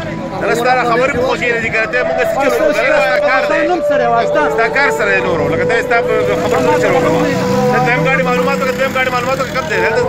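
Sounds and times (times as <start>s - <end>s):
engine hum: 0.0s - 10.0s
men talking: 0.0s - 10.0s.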